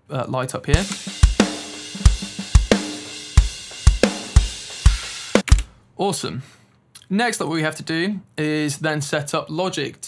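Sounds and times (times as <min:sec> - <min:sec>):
kick drum hits: 0:00.8 - 0:05.7
snare hits: 0:03.8 - 0:05.8.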